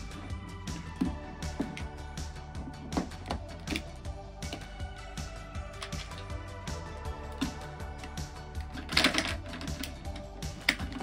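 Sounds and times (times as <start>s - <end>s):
background music: 0.0s - 11.0s
plastic toy clicks and rattles: 8.6s - 11.0s.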